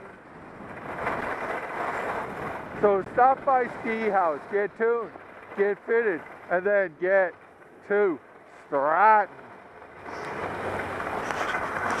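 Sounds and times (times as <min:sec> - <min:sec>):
skis scraping over snow: 0:00.0 - 0:07.3, 0:08.1 - 0:12.0.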